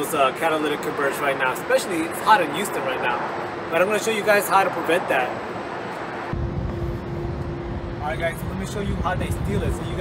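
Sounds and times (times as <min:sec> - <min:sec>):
low rumble with hum: 0:06.3 - 0:10.0.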